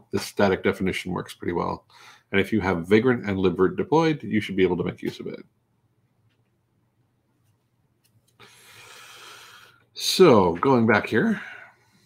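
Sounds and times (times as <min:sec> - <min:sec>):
man breathing close to microphone: 0:01.9 - 0:02.3, 0:08.4 - 0:09.9.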